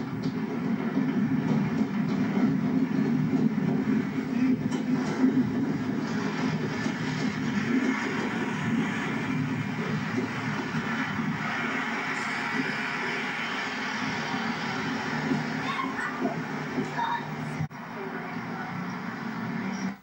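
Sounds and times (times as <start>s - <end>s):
diesel train engine drone: 0.0s - 20.0s.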